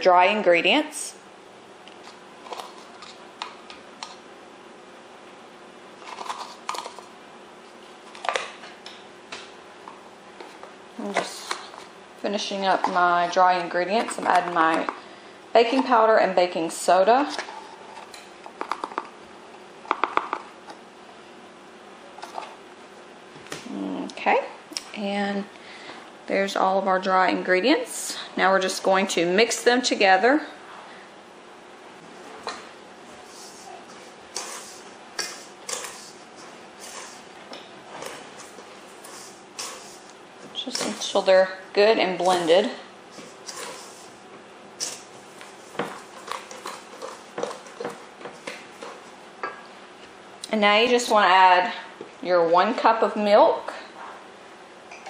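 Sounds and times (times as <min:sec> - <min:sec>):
utensils clicking and tapping: 0:17.3 - 0:19.1, 0:19.9 - 0:20.5.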